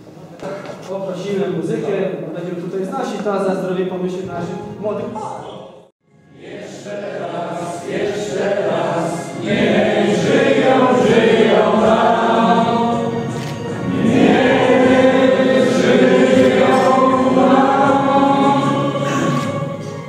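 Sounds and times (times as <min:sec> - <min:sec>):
musical backing: 0:03.9 - 0:20.0
choir singing: 0:06.2 - 0:20.0.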